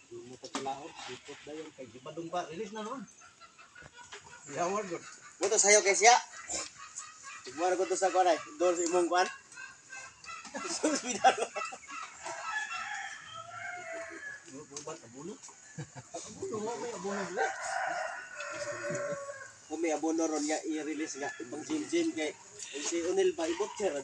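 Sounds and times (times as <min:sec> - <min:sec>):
chickens clucking: 0:00.3 - 0:24.0
rooster crowing: 0:09.6 - 0:14.6, 0:16.8 - 0:19.8, 0:20.9 - 0:22.4.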